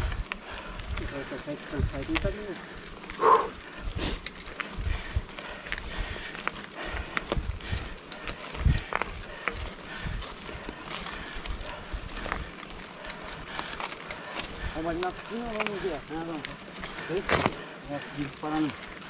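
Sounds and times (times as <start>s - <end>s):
bike rattling and clicking: 0.0s - 19.0s.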